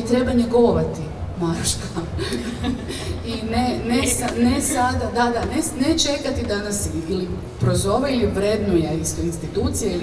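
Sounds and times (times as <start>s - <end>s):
woman speaking: 3.1s - 10.0s.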